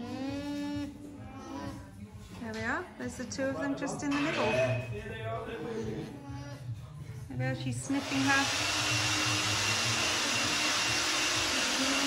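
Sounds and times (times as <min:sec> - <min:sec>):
machine whirring: 0:08.0 - 0:12.0.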